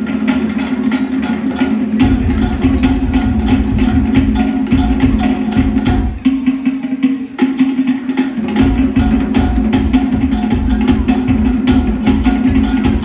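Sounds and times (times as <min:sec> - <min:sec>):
rapid drumming: 0:00.0 - 0:13.0
deeper drum beats: 0:00.1 - 0:13.0.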